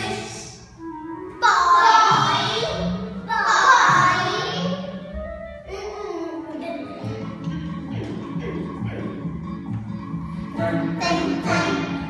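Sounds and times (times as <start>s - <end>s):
children's song music: 0.0s - 12.0s.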